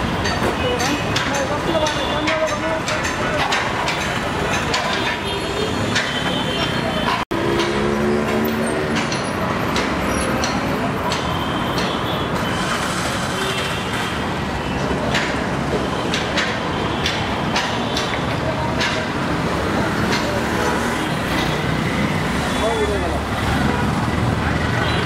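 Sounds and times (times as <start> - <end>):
traffic rumble: 0.0 - 25.0
people's voices: 0.2 - 12.0, 16.1 - 21.8
sharp knocks: 0.2 - 12.4, 15.0 - 19.2.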